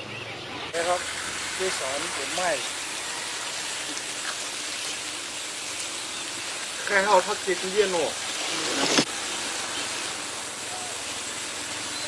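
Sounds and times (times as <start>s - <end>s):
water spraying from hose: 0.7s - 12.0s.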